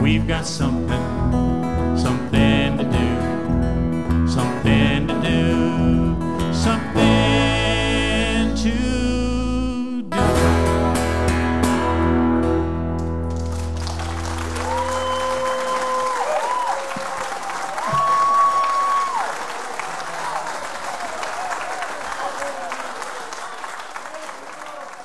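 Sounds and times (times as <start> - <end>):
acoustic guitar chord ringing: 10.1 - 13.8
audience applauding and cheering: 13.0 - 25.0
long whoops: 13.9 - 19.5.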